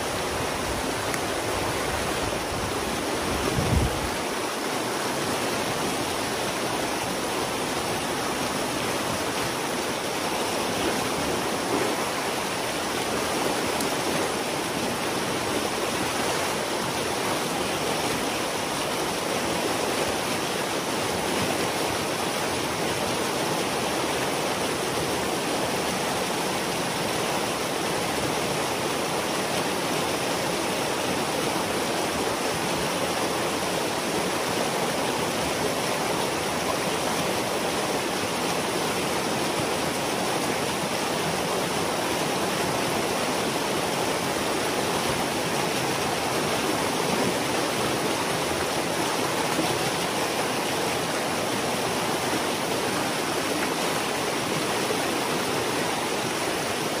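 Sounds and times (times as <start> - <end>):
water rushing through gap: 0.0 - 57.0.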